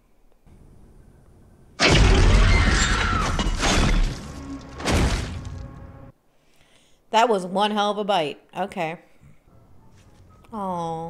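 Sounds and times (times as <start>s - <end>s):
loud crash and crunch: 1.8s - 6.1s.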